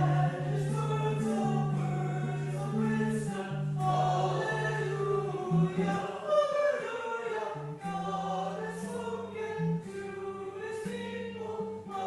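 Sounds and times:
voices singing slow hymn: 0.0s - 12.0s.

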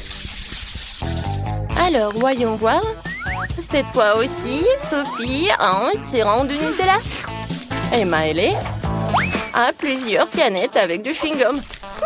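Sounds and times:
background music with chords: 1.3s - 9.7s.

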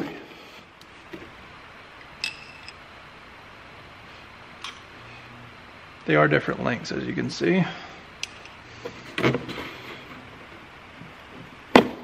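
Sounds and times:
metallic clink: 2.2s - 2.8s.

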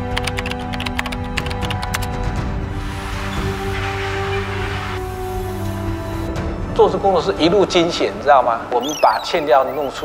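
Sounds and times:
rapid keyboard typing clicks: 0.0s - 2.1s
background music with held tones: 0.0s - 10.0s.

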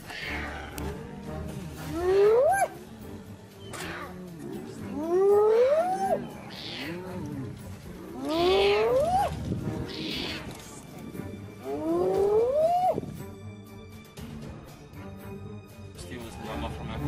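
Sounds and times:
hyenas whooping: 1.9s - 2.8s, 3.7s - 10.5s, 11.6s - 13.2s.

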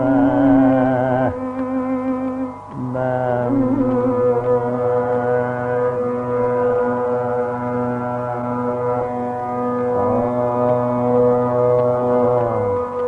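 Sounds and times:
vocal group singing classical music: 0.0s - 13.0s.

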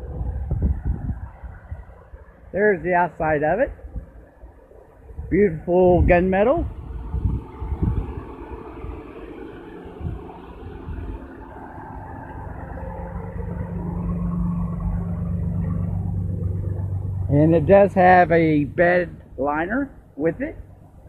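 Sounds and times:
low rumble: 0.0s - 21.0s
vehicle engine idling: 0.0s - 21.0s.

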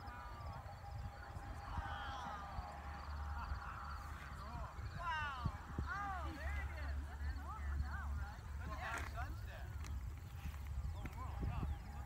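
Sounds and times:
crickets chirping: 0.0s - 12.0s
distant voices: 0.0s - 12.0s
steady low rumble: 0.0s - 12.0s.

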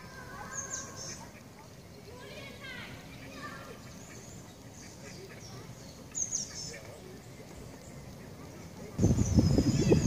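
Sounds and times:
faint bird calls: 0.0s - 10.0s
wind rumble on microphone: 9.0s - 10.0s.

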